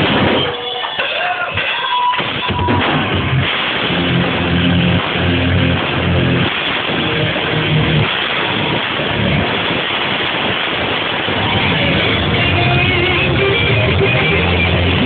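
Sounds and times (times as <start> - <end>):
live rock band playing: 3.1 - 9.5, 11.3 - 15.0.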